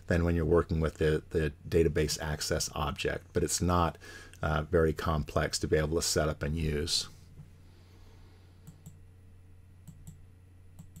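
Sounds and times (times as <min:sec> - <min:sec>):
low steady hum: 0:00.0 - 0:11.0
computer mouse clicks: 0:08.6 - 0:09.0, 0:09.8 - 0:10.2, 0:10.8 - 0:11.0.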